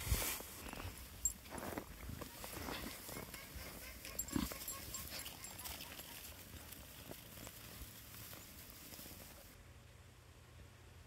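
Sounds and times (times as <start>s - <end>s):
faint steady hum: 0.1s - 11.0s
sheep chewing hay: 0.6s - 9.6s.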